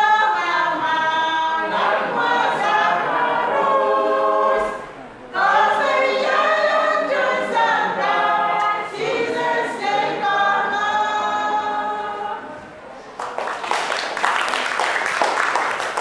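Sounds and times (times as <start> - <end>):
choir singing a cappella: 0.0 - 12.8.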